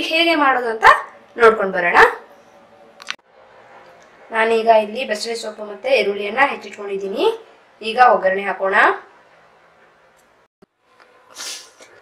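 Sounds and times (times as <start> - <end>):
woman speaking: 0.0 - 2.3, 4.3 - 9.1.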